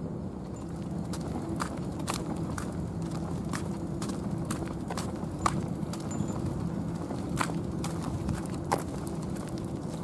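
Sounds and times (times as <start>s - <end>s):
low steady hum: 0.0s - 10.0s
footsteps on asphalt: 0.4s - 10.0s.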